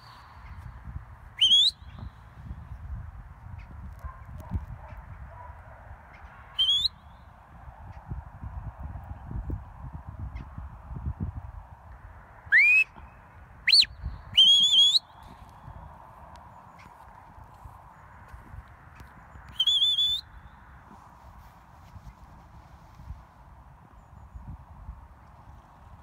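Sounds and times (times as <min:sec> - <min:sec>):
wind rumble on microphone: 0:00.0 - 0:26.0
whistle commands: 0:01.4 - 0:02.0, 0:06.6 - 0:07.0, 0:12.5 - 0:13.0, 0:13.7 - 0:15.2, 0:19.5 - 0:20.4.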